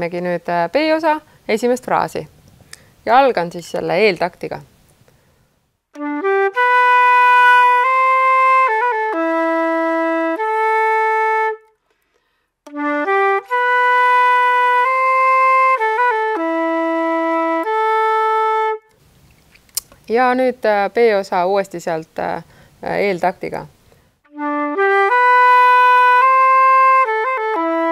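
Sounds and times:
flute playing waltz tune: 6.0 - 11.8, 12.7 - 19.0, 24.3 - 27.9.

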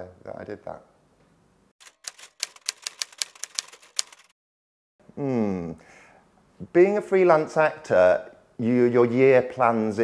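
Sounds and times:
typewriter keys clicking: 1.8 - 4.3.

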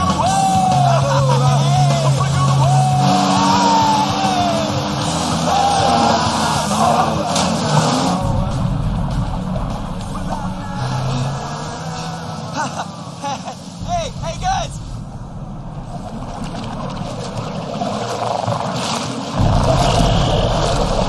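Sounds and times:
action film music: 0.0 - 12.8, 13.8 - 21.0
person laughing: 0.6 - 2.7, 11.9 - 13.8.

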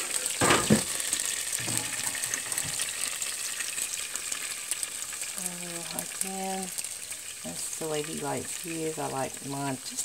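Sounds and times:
bacon sizzling and crackling: 0.0 - 10.0.

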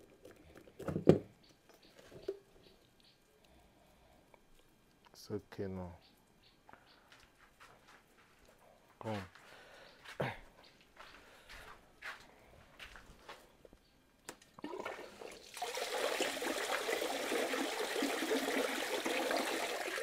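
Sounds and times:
water spraying into concrete tank: 14.6 - 20.0.

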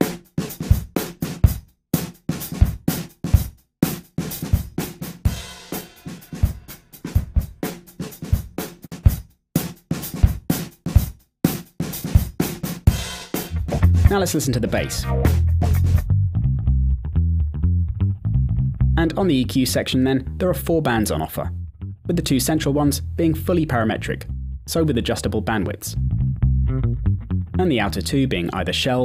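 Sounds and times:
gated drum loop: 0.0 - 16.1.

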